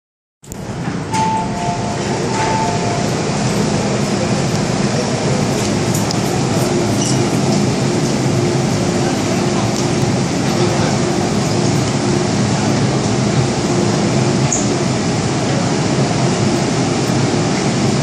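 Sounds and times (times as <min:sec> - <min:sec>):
train humming: 0:00.5 - 0:18.0
passengers chattering: 0:00.6 - 0:18.0.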